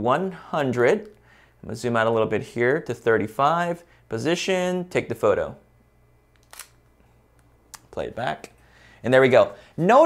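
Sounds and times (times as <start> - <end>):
camera shutter click: 6.4 - 6.8.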